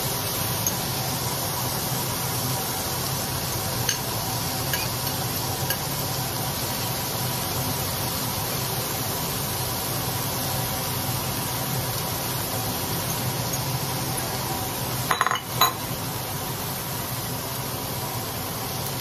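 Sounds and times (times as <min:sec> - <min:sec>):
steak sizzling in a skillet: 0:00.0 - 0:19.0.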